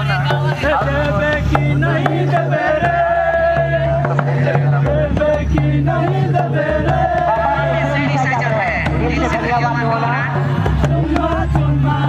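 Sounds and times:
folk singing voices: 0.0 - 12.0
hand drum beat: 0.0 - 12.0.

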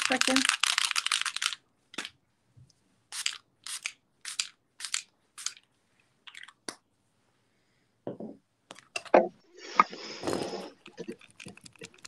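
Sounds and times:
spray bottle spritzing: 3.1 - 5.6.

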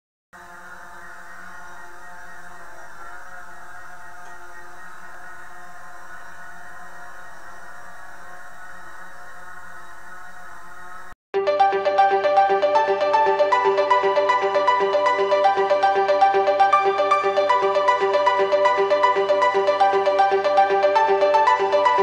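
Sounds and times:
quadcopter propellers buzzing: 0.4 - 11.1.

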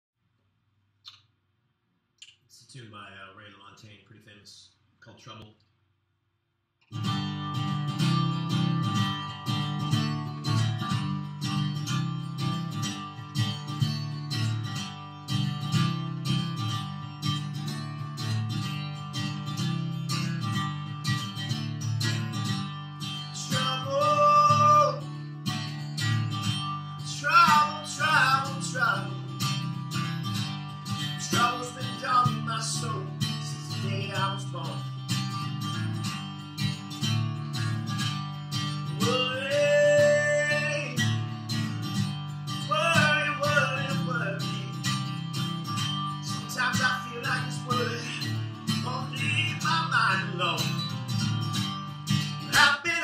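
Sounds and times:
acoustic guitar strumming: 6.9 - 53.0
man singing: 23.2 - 25.2, 27.0 - 29.7, 31.0 - 35.0, 38.9 - 41.2, 42.6 - 45.0, 46.2 - 51.0, 52.4 - 53.0.

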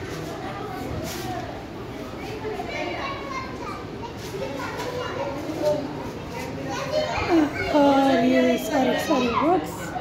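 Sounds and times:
children talking and calling: 0.0 - 10.0.

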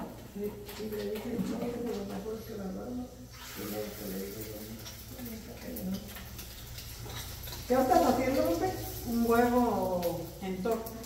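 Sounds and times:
egg sizzling in a pan: 1.9 - 11.0.

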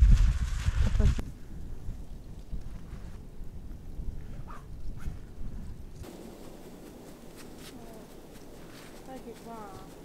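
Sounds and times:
wind rumble on microphone: 0.0 - 10.0
footsteps crunching in snow: 6.0 - 10.0.

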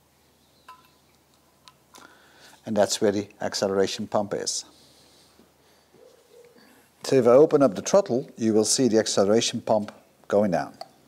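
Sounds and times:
faint metallic clinks: 0.7 - 2.0.

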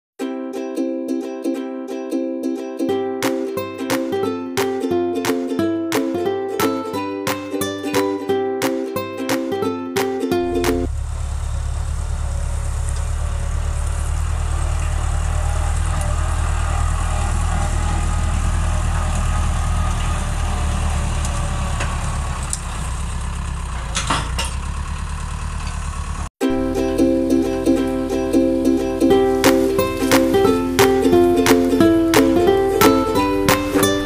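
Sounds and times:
ukulele music: 0.2 - 10.9, 26.4 - 34.0
tractor diesel engine under load: 10.5 - 34.0.

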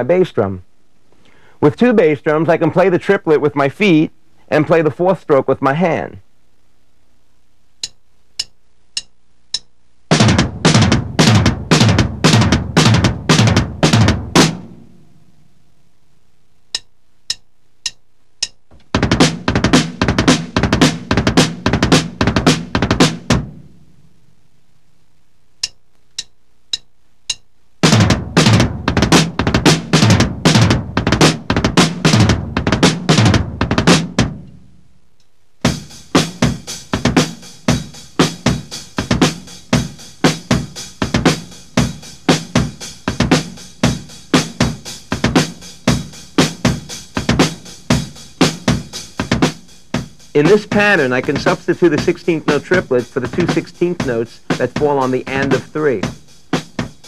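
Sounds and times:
quick count-in clicks: 7.8 - 9.7, 16.7 - 18.9, 25.6 - 27.5, 50.4 - 56.2
drum kit playing: 7.8 - 15.1, 16.7 - 24.1, 25.6 - 34.7, 35.6 - 57.0.

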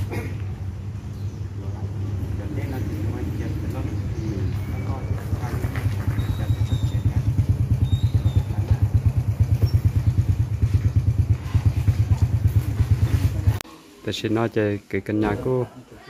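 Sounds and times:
motorcycle engine idling: 0.4 - 13.6.

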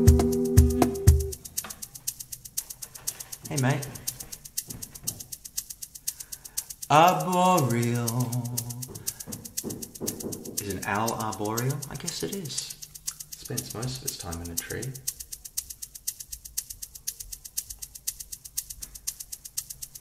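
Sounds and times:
drum machine shaker rhythm: 0.0 - 20.0
man's voice: 6.9 - 8.9.

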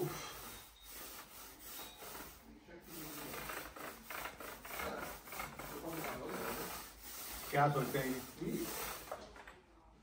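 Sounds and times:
paint roller rubbing on wall: 0.0 - 9.4.

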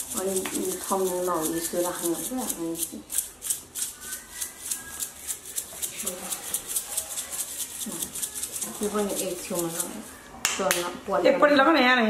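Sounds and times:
seasoning shaker rattling: 0.0 - 10.2.

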